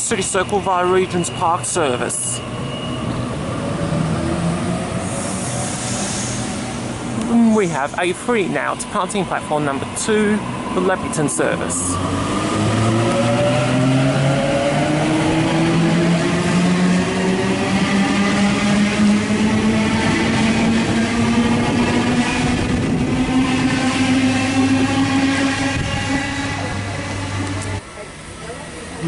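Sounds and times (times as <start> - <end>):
rumble of train wheels: 0.0 - 29.0.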